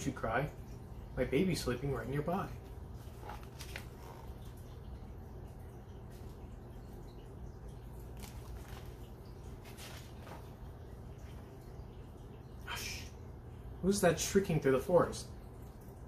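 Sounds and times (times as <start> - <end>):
low room hum: 0.0 - 16.0
book pages rustling: 2.9 - 4.4, 8.1 - 10.8
book being lifted and lowered: 3.2 - 4.2.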